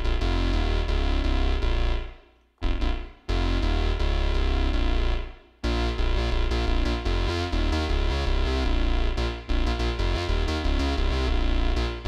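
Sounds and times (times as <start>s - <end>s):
synthesizer notes with chorus: 0.0s - 12.0s.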